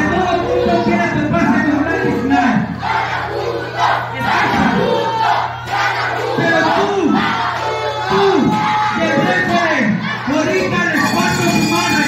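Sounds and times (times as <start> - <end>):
man shouting over loudspeaker: 0.0 - 2.9, 3.8 - 12.0
crowd noise: 0.0 - 12.0.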